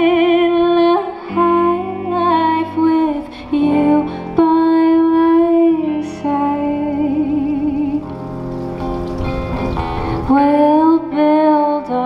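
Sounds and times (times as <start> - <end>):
woman singing with vibrato: 0.0 - 8.1, 10.2 - 12.0
electric guitar: 0.0 - 12.0
strummed acoustic guitar: 1.3 - 12.0.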